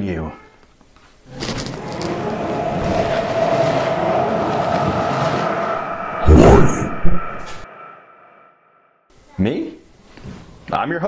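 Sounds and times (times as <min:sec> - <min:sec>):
rough rumble: 0:01.4 - 0:08.9
held whine: 0:01.6 - 0:08.9.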